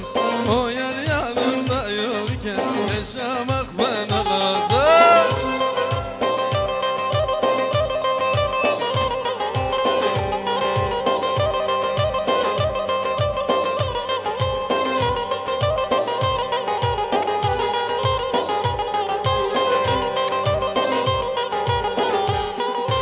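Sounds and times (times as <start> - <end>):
instrumental dance music: 0.0 - 23.0.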